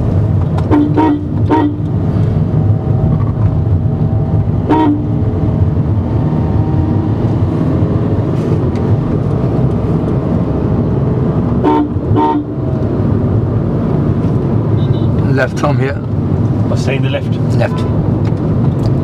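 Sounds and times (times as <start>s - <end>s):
road and engine rumble in car: 0.0s - 19.0s
vehicle horn toots: 0.6s - 1.9s, 4.7s - 5.2s, 11.6s - 12.6s, 14.7s - 15.2s.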